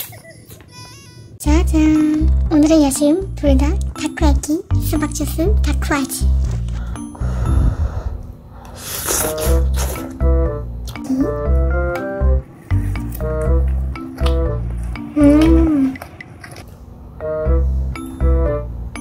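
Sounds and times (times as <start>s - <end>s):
bouncy keyboard tune with bass beat: 9.5s - 15.9s, 17.2s - 19.0s.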